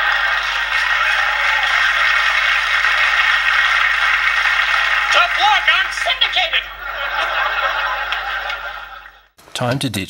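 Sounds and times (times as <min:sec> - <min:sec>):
television static hiss: 0:00.0 - 0:09.7.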